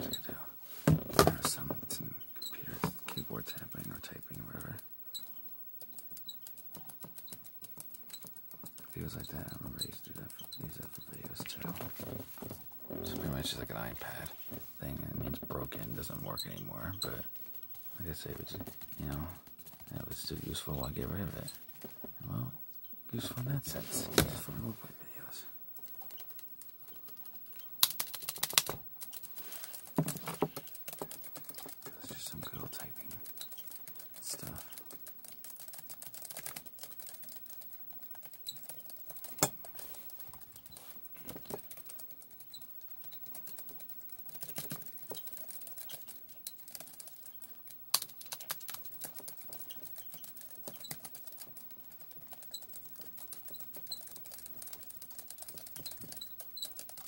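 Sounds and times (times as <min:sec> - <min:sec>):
fingers tapping and clicking: 0:01.1 - 0:12.0, 0:25.8 - 0:57.0.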